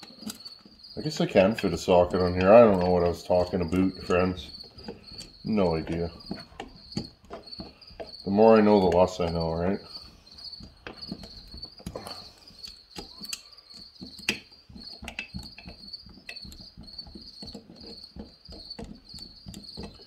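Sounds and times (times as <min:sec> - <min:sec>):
nut driver metal clicks and taps: 0:12.6 - 0:17.6.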